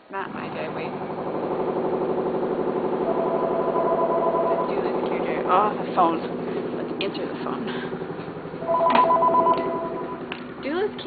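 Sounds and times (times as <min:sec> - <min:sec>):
desk telephone ringing: 0:03.1 - 0:05.3, 0:08.6 - 0:10.4.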